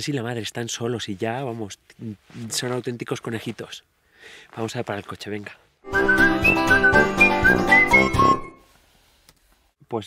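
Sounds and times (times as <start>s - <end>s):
light backing music: 5.8s - 8.6s
whistled jingle: 5.9s - 8.6s.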